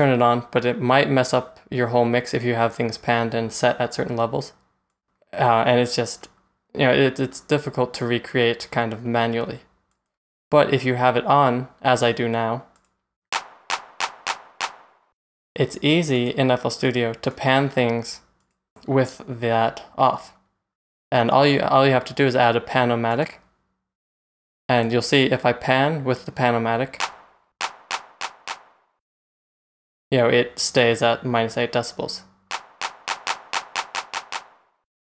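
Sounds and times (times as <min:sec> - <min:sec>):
hand clap drum sample: 0:13.4 - 0:14.9, 0:27.0 - 0:28.7, 0:32.5 - 0:34.6.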